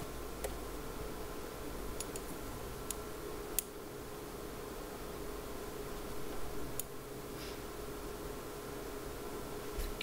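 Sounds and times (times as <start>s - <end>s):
faint constant hum: 0.0s - 10.0s
room hiss: 0.0s - 10.0s.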